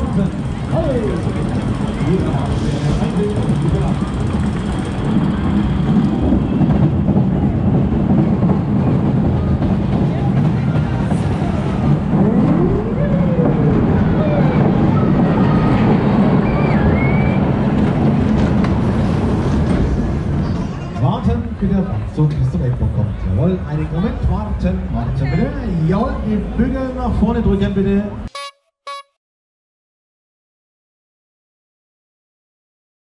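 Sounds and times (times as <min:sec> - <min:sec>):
roller coaster wheels rumbling: 0:00.0 - 0:28.3.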